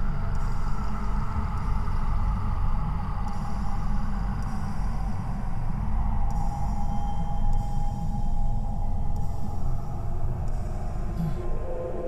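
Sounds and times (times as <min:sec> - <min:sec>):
low rumbling film score drone: 0:00.0 - 0:12.0.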